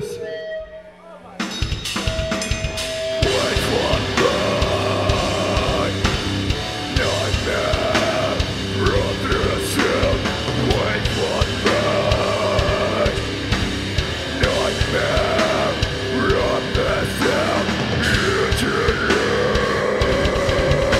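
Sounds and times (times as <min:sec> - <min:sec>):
distorted guitars: 0:00.0 - 0:20.9
drums: 0:00.0 - 0:20.9
shouted vocals: 0:03.2 - 0:06.0.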